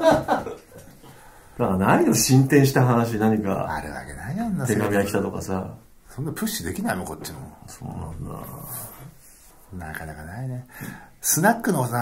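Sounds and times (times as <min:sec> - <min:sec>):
speech: 0:01.6 - 0:09.1, 0:09.7 - 0:12.0
breathy exhale: 0:10.7 - 0:11.2.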